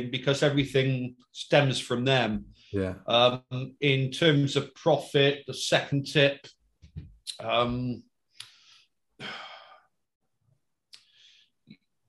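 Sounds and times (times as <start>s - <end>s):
man breathing out: 8.5s - 9.9s.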